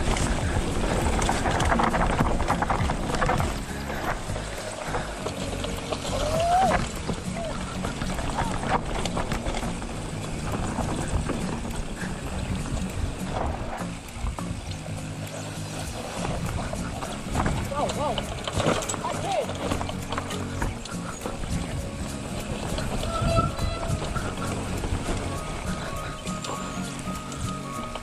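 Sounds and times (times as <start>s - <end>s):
background music: 0.0s - 28.0s
mountain bike rattling over dirt: 0.0s - 28.0s
quick clicks from bike: 0.0s - 28.0s.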